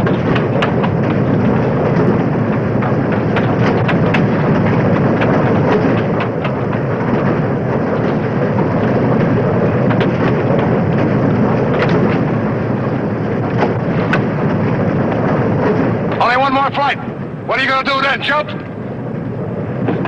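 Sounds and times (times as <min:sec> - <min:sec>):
loud steady low noise: 0:00.0 - 0:20.0.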